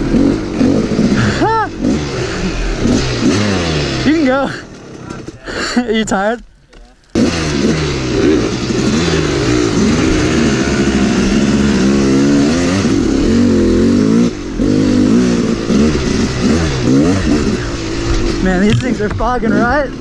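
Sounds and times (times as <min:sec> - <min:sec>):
dirt bike engine revving: 0:00.0 - 0:06.4, 0:07.0 - 0:20.0.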